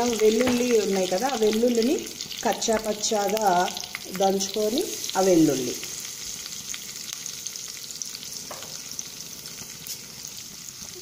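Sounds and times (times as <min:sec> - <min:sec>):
spices sizzling in hot oil: 0:00.0 - 0:11.0.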